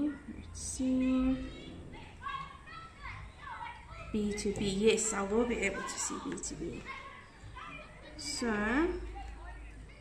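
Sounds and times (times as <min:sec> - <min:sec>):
faint children's calls: 0:00.0 - 0:10.0.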